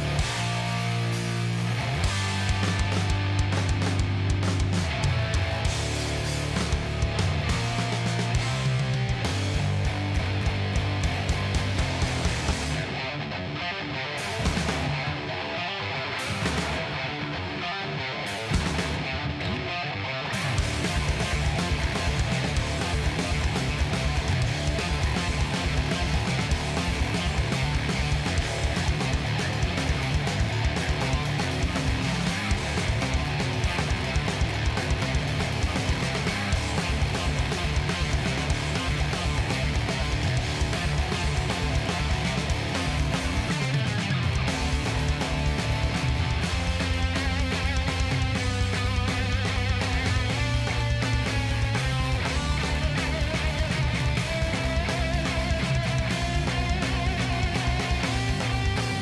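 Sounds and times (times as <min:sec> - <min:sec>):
drums and cymbals: 0:00.0 - 0:13.0, 0:14.2 - 0:15.2, 0:16.2 - 0:17.0, 0:18.3 - 0:19.1, 0:20.4 - 0:59.0
electric bass: 0:00.0 - 0:59.0
electric guitar: 0:00.0 - 0:59.0.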